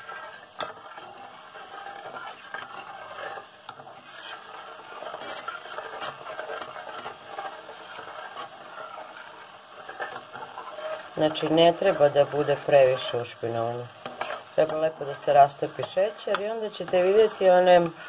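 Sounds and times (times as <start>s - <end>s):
spoon scraping saucepan: 0.0s - 18.0s.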